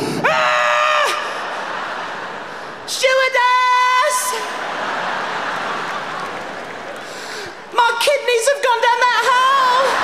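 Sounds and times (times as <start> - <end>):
audience noise: 1.0 - 10.0.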